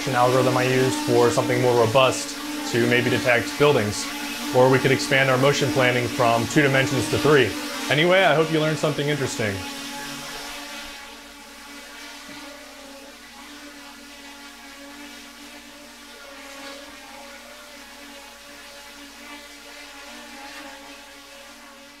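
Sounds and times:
quadcopter propellers humming: 0.0 - 22.0.

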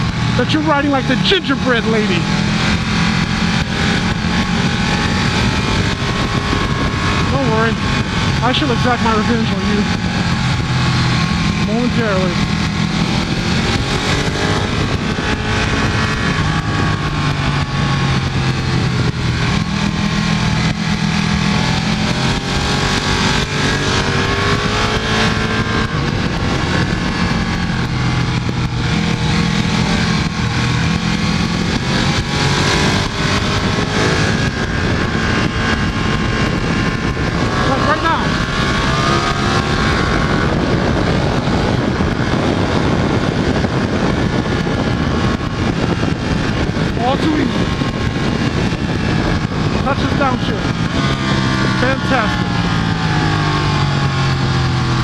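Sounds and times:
motorcycle engine revving: 0.0 - 55.0
wind noise: 0.0 - 55.0.

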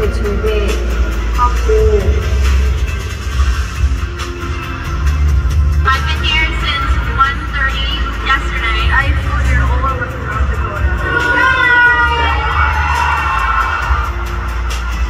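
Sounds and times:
people talking: 0.0 - 2.3, 5.8 - 12.3
bass-heavy background music: 0.0 - 15.0.

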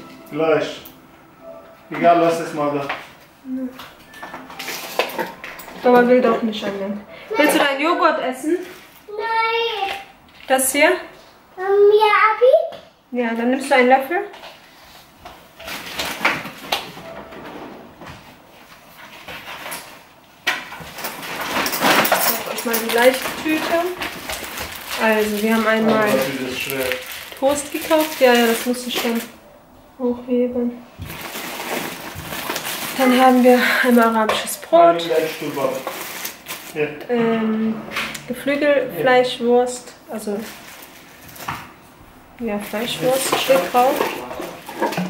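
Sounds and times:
woman speaking: 5.8 - 8.7, 10.5 - 11.1, 22.3 - 24.0, 25.0 - 26.6, 27.4 - 29.3, 33.0 - 35.0, 37.1 - 40.5, 42.4 - 44.2
plastic packaging rustling: 18.5 - 29.4, 31.0 - 36.9, 40.1 - 41.7, 42.4 - 45.0
rummaging in kitchen drawer: 20.8 - 29.3, 42.8 - 45.0.

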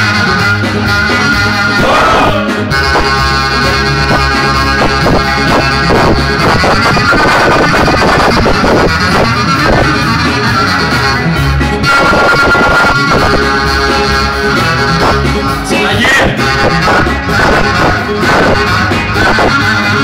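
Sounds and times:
clarinet: 0.0 - 20.0
drum kit: 0.0 - 20.0
folk dance music: 0.0 - 20.0.

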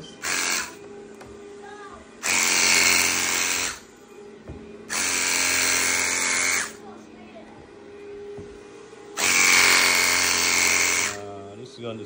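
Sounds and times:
extraction machine hum: 0.0 - 1.1, 2.2 - 3.9, 4.9 - 6.8, 8.8 - 11.4.

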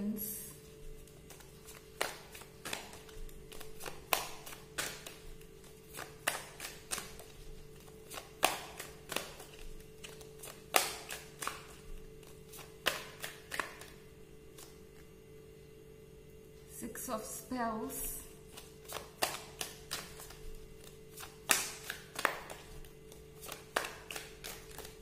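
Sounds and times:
quiet background music: 0.0 - 25.0
cards being shuffled: 0.6 - 15.1, 18.4 - 25.0.

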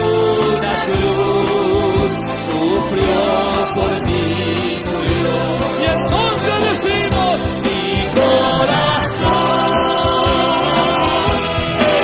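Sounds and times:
choir singing held notes: 0.0 - 12.0
instrumental backing: 0.0 - 12.0.

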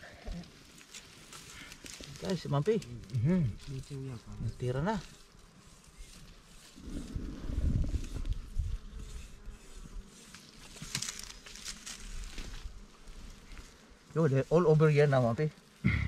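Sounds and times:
bees buzzing: 0.2 - 16.0
scraping and rustling: 0.4 - 15.2
sharp scratches: 0.8 - 12.8.

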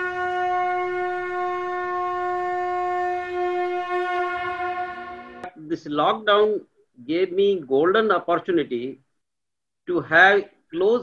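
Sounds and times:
long held wind instrument note: 0.0 - 5.6.

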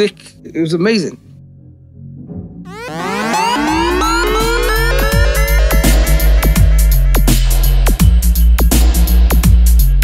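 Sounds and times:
deep bass: 1.3 - 10.0
synth sweep rising in pitch: 2.7 - 7.4.

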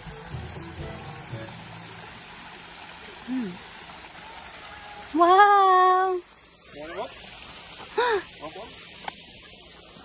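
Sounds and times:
small waterfall rushing: 0.0 - 10.0.

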